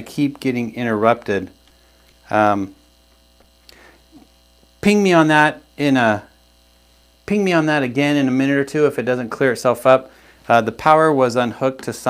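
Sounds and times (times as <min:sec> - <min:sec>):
man speaking: 0:00.0 - 0:01.6, 0:02.2 - 0:02.8, 0:04.2 - 0:06.4, 0:07.3 - 0:12.0
electrical mains hum: 0:00.0 - 0:12.0.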